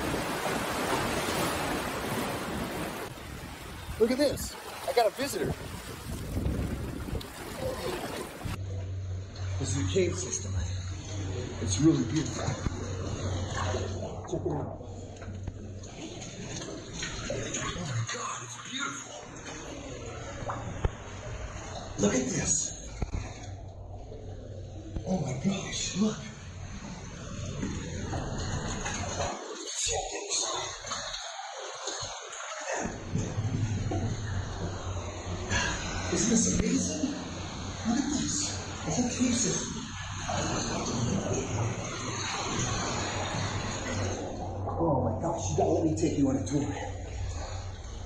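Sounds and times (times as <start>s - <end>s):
seawater rumbling in cave: 0.0s - 48.0s
water sloshing and splashing: 0.0s - 48.0s.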